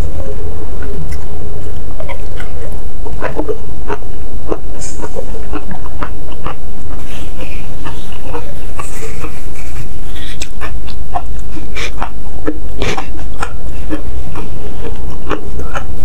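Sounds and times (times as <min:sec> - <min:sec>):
steady low hum: 0:00.0 - 0:16.0
breathy sniffs: 0:10.0 - 0:10.5
wet chewing and lip smacks: 0:10.2 - 0:11.2.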